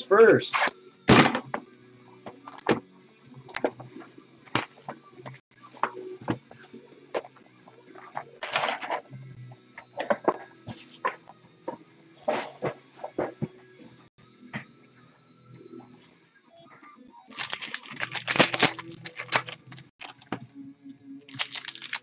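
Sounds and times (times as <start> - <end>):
plastic wrap crinkling: 17.3 - 20.3, 21.3 - 22.0.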